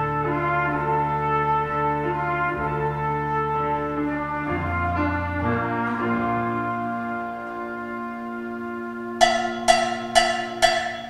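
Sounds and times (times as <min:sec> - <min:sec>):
ensemble holding a chord: 0:09.2 - 0:11.0
ringing percussive strikes: 0:09.2 - 0:11.0.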